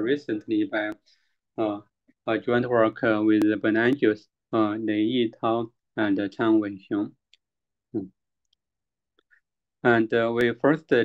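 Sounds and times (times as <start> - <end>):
man speaking: 0.0 - 1.0, 1.6 - 7.2, 8.0 - 8.2, 9.8 - 11.0.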